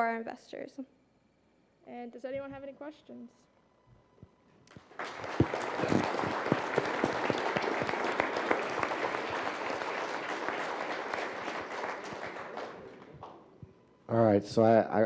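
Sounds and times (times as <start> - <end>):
audience applauding: 4.7 - 13.5.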